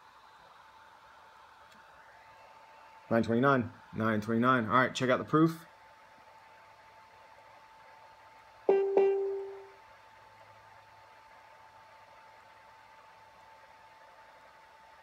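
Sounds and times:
faint high whine: 8.6s - 10.0s.

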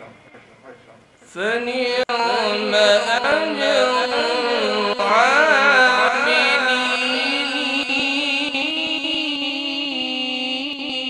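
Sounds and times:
man chanting melodically: 1.3s - 11.0s.

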